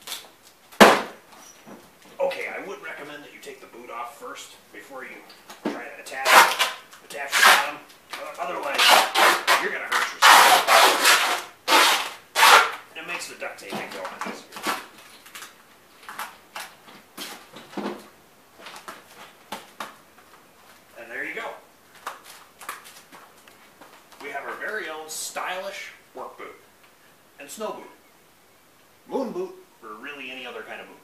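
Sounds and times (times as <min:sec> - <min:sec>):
duct tape ripping off roll: 0:00.0 - 0:01.2, 0:06.1 - 0:12.9, 0:14.0 - 0:17.4
tape rustling: 0:00.0 - 0:02.2, 0:05.3 - 0:21.0, 0:21.9 - 0:24.8.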